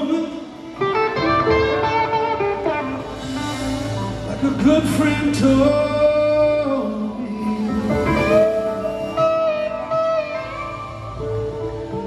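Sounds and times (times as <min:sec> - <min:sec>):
electric guitar lead notes: 0:00.0 - 0:12.0
live rock band playing: 0:00.0 - 0:12.0.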